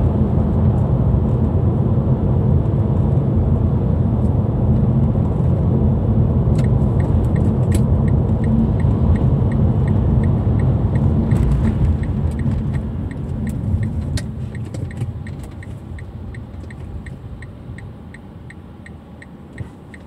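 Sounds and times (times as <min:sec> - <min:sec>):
car cabin road rumble: 0:00.0 - 0:20.0
turn indicator ticking: 0:06.5 - 0:20.0.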